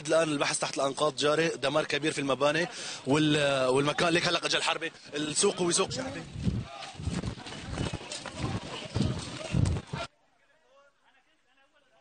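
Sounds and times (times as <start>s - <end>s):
background voices: 2.6s - 10.1s
footsteps crunching on rubble: 5.2s - 10.1s.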